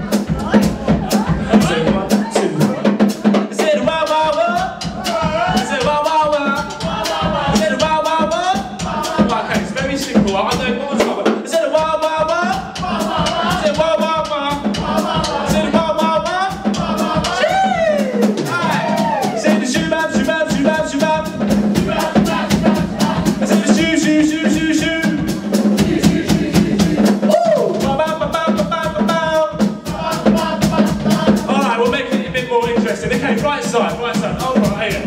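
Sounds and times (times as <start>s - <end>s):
man singing: 0.0s - 6.9s, 7.5s - 25.4s, 27.2s - 35.0s
drum kit playing: 0.0s - 35.0s.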